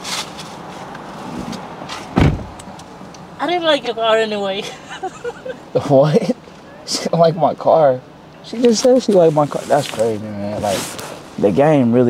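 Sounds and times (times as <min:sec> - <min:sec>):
car door slamming: 0:01.3 - 0:02.6.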